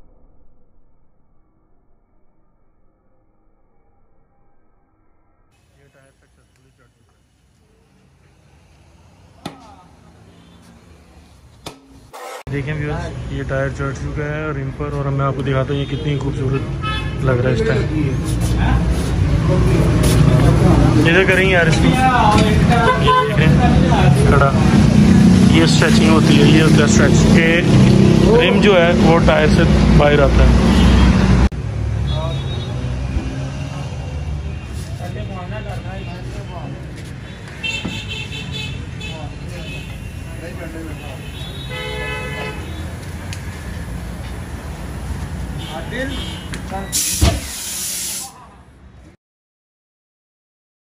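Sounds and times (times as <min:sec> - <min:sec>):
hum of vehicle engines: 0:03.2 - 0:47.7
people talking: 0:05.7 - 0:08.1, 0:17.2 - 0:24.8, 0:25.5 - 0:30.6, 0:34.8 - 0:37.0, 0:39.0 - 0:41.6
aerosol spray can hissing: 0:47.0 - 0:48.3.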